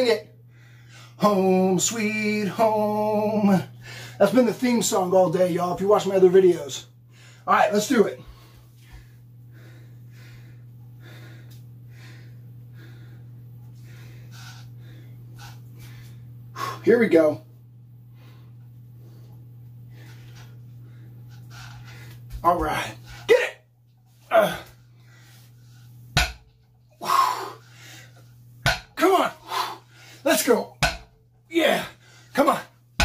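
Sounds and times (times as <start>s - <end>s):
steady low hum: 0.0s - 33.0s
man breathing hard: 0.4s - 1.2s, 3.7s - 4.2s, 8.2s - 16.8s, 26.9s - 28.3s, 29.4s - 30.3s
man grunting and exhaling: 24.3s - 24.8s, 27.0s - 27.6s.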